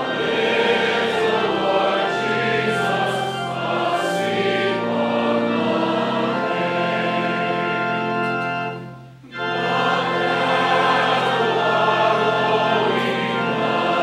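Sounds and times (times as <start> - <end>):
congregation singing a hymn: 0.0 - 14.0.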